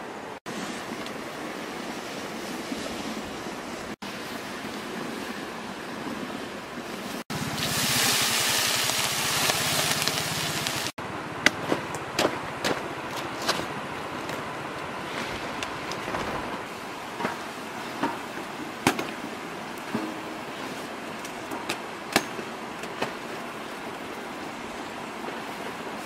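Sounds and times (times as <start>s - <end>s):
outdoor noise: 0.0s - 26.0s
hiss: 7.4s - 10.9s.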